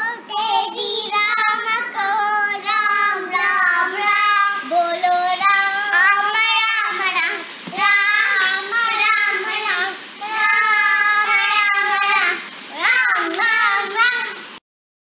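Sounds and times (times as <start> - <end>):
child singing devotional song: 0.0 - 14.6.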